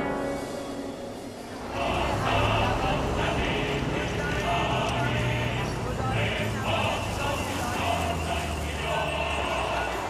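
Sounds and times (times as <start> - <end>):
indistinct voices: 1.5 - 10.0.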